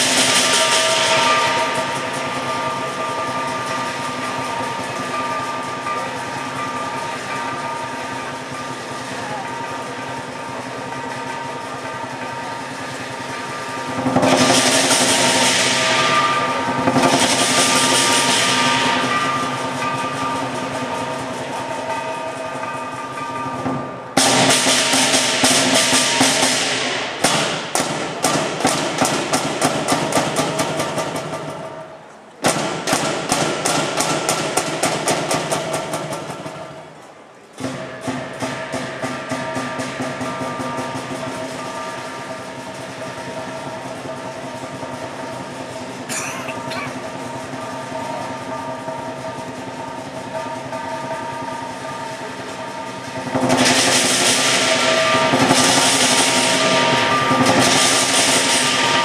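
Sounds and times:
lion dance drum: 0.0 - 31.8, 32.4 - 37.0, 37.6 - 51.9, 52.6 - 59.0
gong: 0.0 - 32.0, 32.7 - 59.0
cymbals crashing: 0.0 - 59.0.

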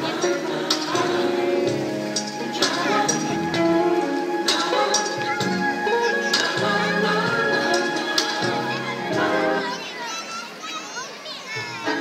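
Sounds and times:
music over loudspeakers: 0.0 - 9.9, 11.6 - 12.0
children calling and shouting: 0.0 - 12.0.

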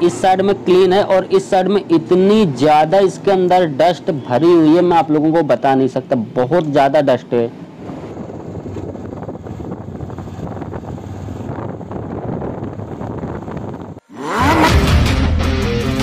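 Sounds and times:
road and wind noise: 0.0 - 14.9
motorcycle engine running: 7.6 - 15.3
intro music with deep hit: 14.6 - 16.0.

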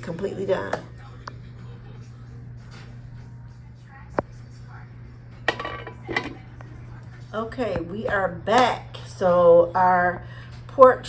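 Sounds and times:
kitchenware clink: 5.5 - 6.4.

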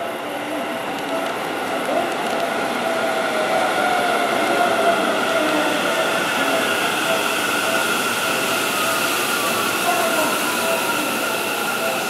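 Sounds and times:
train wheels rumbling: 0.0 - 12.0.

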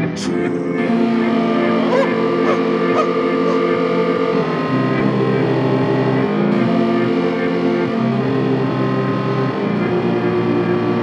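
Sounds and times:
sustained synthesizer chord: 0.0 - 11.0.

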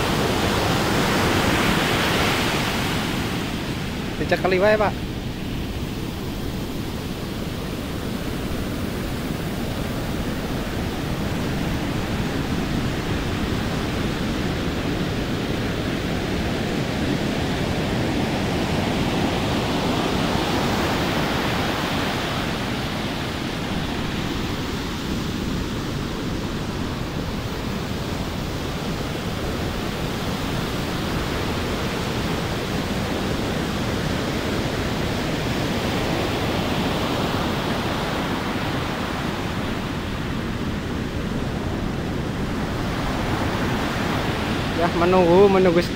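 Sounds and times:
ocean surf breaking: 0.0 - 45.9.

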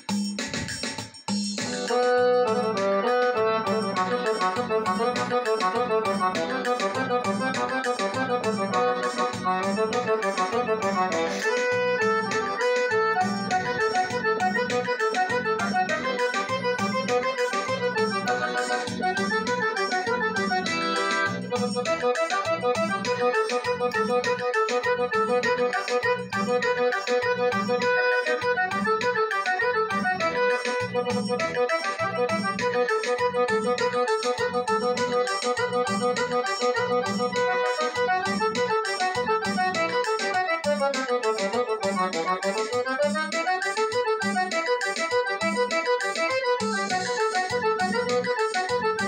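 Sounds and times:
keyboard bass and percussion rhythm: 0.0 - 49.0
keyboard accordion-like solo: 1.6 - 49.0.

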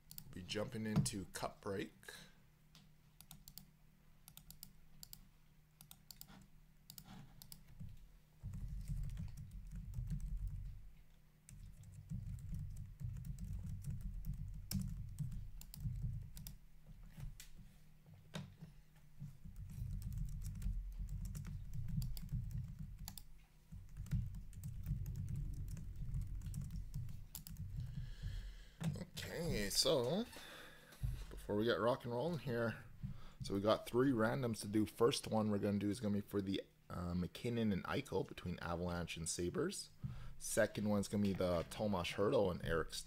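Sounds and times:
typing on computer keyboard: 8.5 - 10.7, 11.5 - 16.6, 19.5 - 27.8.

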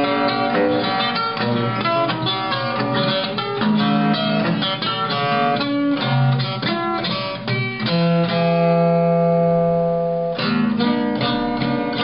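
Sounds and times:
plucked guitar-like strings: 0.0 - 12.0.

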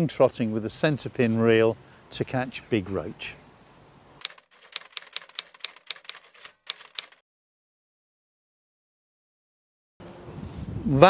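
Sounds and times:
typewriter key clicks: 4.2 - 7.2.

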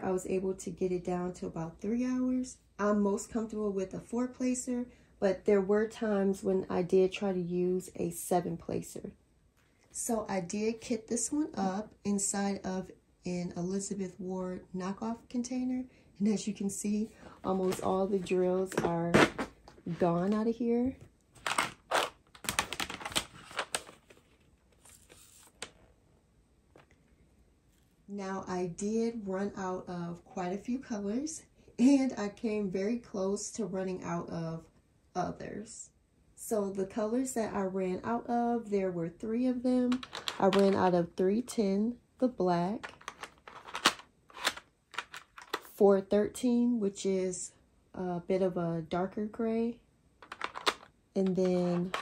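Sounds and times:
plastic container clicks and clatter: 39.9 - 40.8, 42.8 - 45.7, 50.2 - 52.0.

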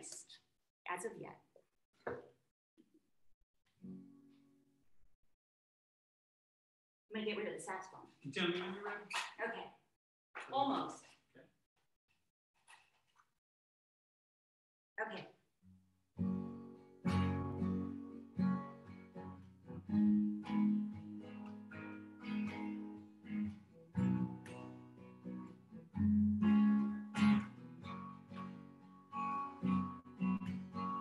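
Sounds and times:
acoustic guitar chords: 16.2 - 31.0.

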